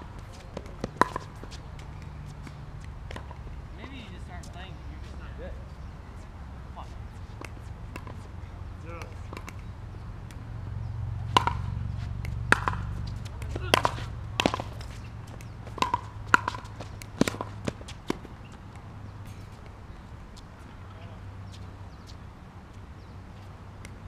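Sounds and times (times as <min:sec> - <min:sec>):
ball hits and bounces: 0:00.0 - 0:04.0, 0:07.2 - 0:10.5, 0:11.1 - 0:19.8.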